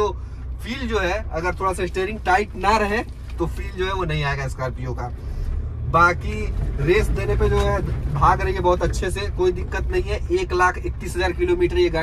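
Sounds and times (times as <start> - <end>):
man talking: 0.0 - 5.2, 5.9 - 12.0
diesel engine droning: 0.0 - 12.0
road noise: 0.0 - 12.0.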